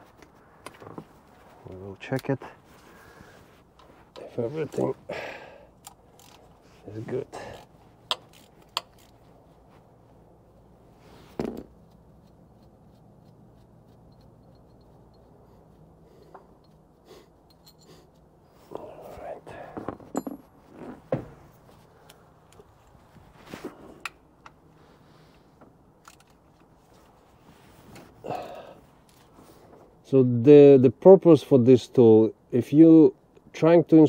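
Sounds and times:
faint steady hum: 0.0s - 34.0s
hand tools clinking on metal: 17.4s - 18.0s.

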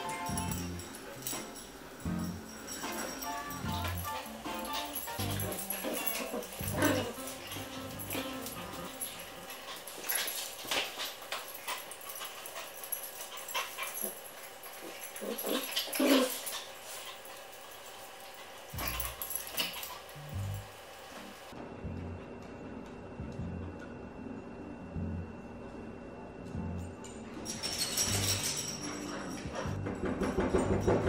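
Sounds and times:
dogs playing: 0.0s - 21.6s, 26.5s - 31.0s.

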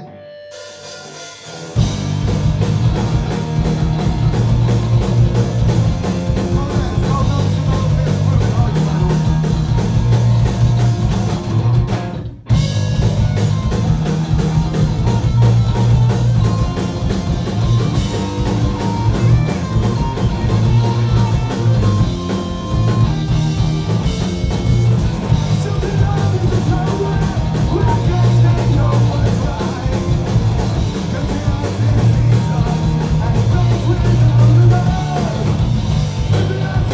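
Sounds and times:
punk rock band playing live: 0.0s - 36.9s
person singing: 6.4s - 9.5s, 25.5s - 35.6s, 36.3s - 36.9s.

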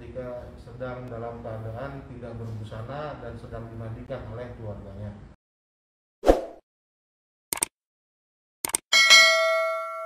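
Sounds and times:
brief clicks: 8.6s - 8.8s
notification bell ding: 8.9s - 10.0s.

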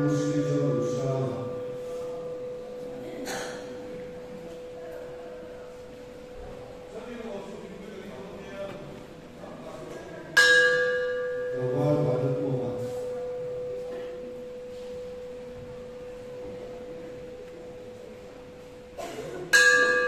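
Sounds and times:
brass bell struck and ringing: 19.6s - 20.0s.

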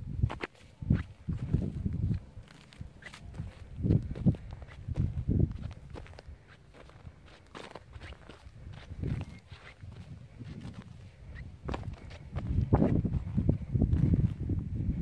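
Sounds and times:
footsteps crunching on rock: 0.3s - 11.0s, 11.6s - 14.4s.

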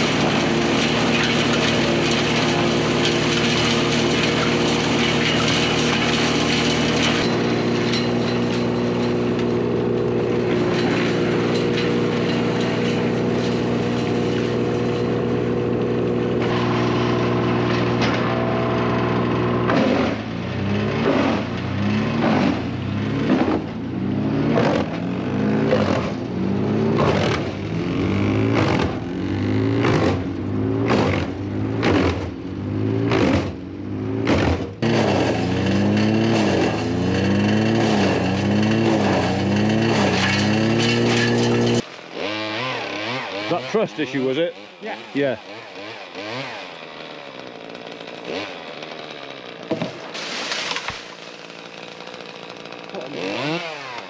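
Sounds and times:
wood chipper engine running: 0.0s - 54.0s
wood cracking in chipper: 0.0s - 54.0s.

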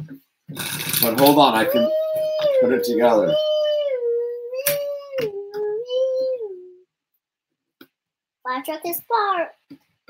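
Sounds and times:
child imitating a siren: 1.6s - 6.8s.

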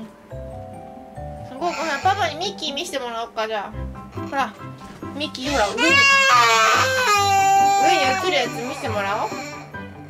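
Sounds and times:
toddler crying: 1.5s - 2.4s, 5.4s - 9.8s.

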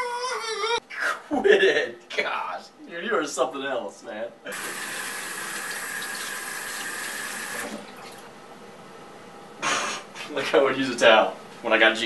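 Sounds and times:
sink tap running: 4.5s - 8.2s.

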